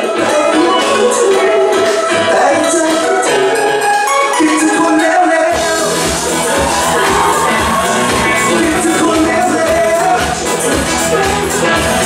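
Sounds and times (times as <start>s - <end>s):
live band music: 0.0s - 12.0s
man singing: 0.0s - 12.0s
bass and drums: 5.5s - 12.0s.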